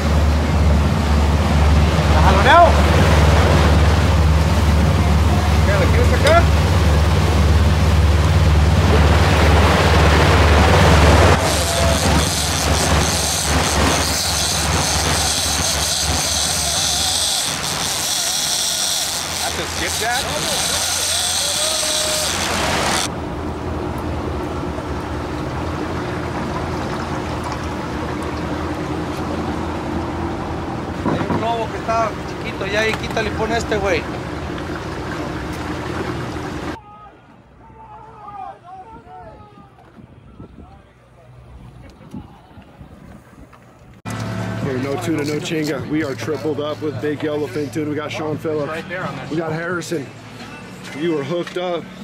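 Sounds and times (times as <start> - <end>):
water rushing along hull: 0.0 - 39.7
boat engine humming: 0.0 - 52.0
wind noise: 38.9 - 40.9
wind noise on microphone: 38.9 - 44.0.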